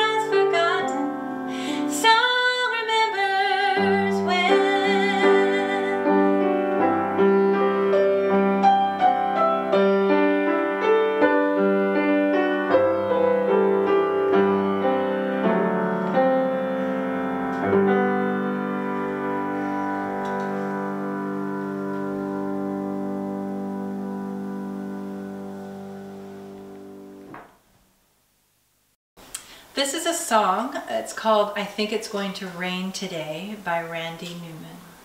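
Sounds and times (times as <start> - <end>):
grand piano playing: 0.0 - 27.5.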